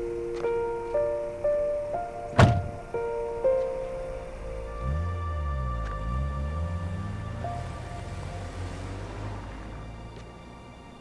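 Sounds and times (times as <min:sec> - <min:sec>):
slow background music: 0:00.0 - 0:11.0
car door shutting: 0:02.3 - 0:02.9.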